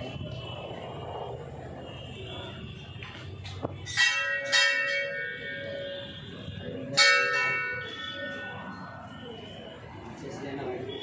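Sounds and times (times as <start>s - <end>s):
temple bell ringing: 3.8s - 11.0s.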